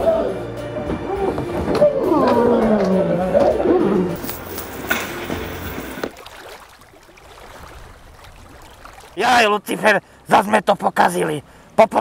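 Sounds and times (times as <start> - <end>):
voices wailing and growling: 0.0 - 4.2.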